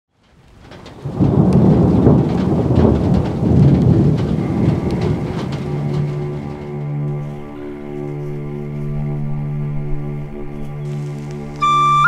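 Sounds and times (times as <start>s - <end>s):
steady rain: 0.1s - 8.9s, 10.8s - 12.0s
thunder rumbling: 0.2s - 7.9s
sharp crackles of thunder: 0.3s - 7.6s.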